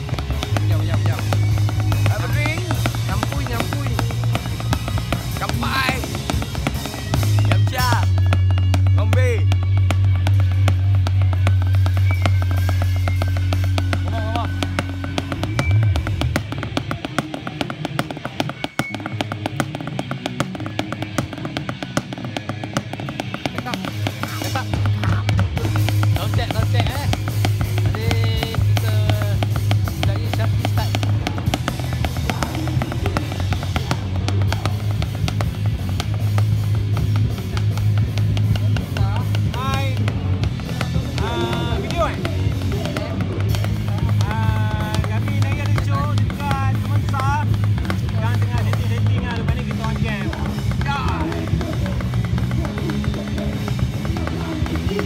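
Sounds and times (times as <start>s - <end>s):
rapid drumming: 0.0s - 55.0s
voices talking: 0.0s - 55.0s.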